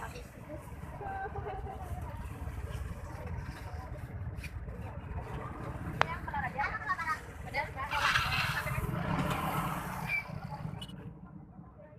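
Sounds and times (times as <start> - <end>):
traffic rumble: 0.0 - 11.9.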